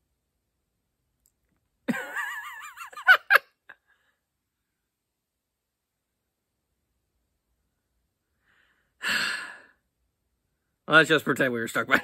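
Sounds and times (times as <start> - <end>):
person sighing: 8.5 - 9.8.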